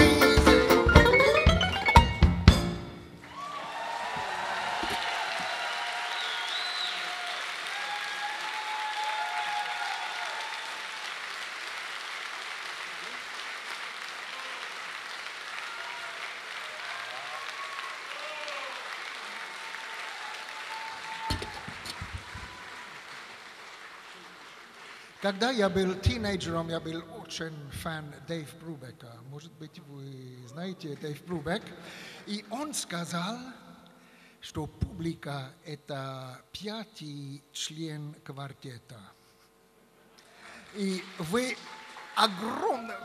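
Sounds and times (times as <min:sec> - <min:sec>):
audience applauding: 0:03.2 - 0:26.0, 0:40.2 - 0:43.0.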